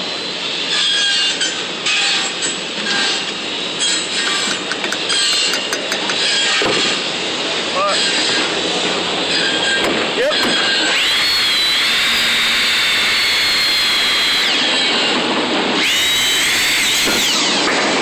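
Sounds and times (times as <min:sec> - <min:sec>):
construction machinery noise: 0:00.0 - 0:18.0
indistinct voices: 0:09.8 - 0:10.7.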